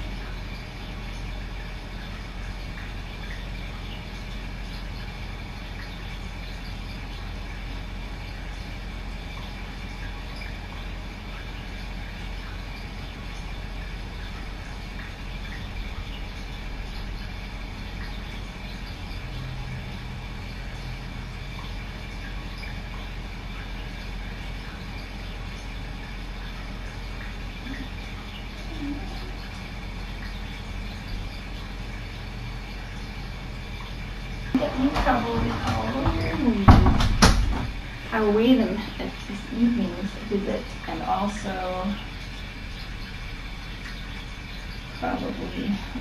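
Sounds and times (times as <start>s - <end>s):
room hum and hiss: 0.0s - 46.0s
person speaking: 34.6s - 36.7s.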